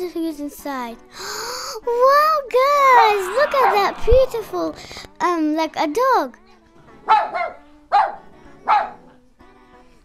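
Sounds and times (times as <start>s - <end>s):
faint background music: 0.0s - 10.0s
dog barking: 7.0s - 9.2s.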